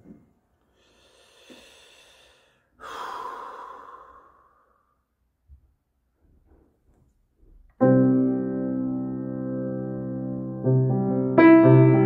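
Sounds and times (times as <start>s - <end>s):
person sighing: 0.8s - 5.0s.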